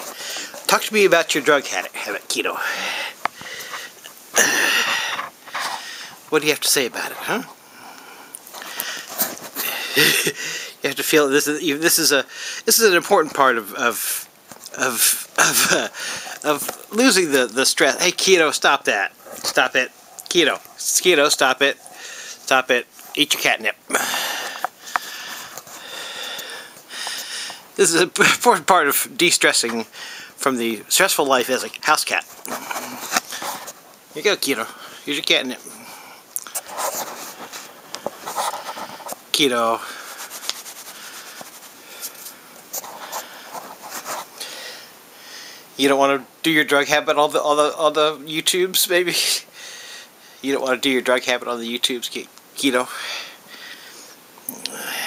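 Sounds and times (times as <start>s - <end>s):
breathing close to microphone: 0.0s - 0.7s, 2.0s - 6.3s, 7.6s - 10.8s, 15.9s - 16.4s, 21.8s - 22.5s, 23.9s - 27.7s, 29.9s - 30.4s, 32.4s - 33.8s, 34.7s - 39.2s, 39.8s - 45.7s, 49.5s - 50.4s, 53.0s - 55.0s
cat sniffing: 40.0s - 44.4s.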